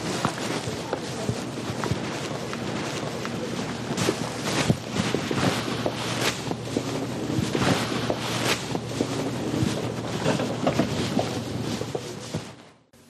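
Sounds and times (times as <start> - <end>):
wind buffeting microphone: 0.0 - 12.4
footsteps: 0.0 - 12.9.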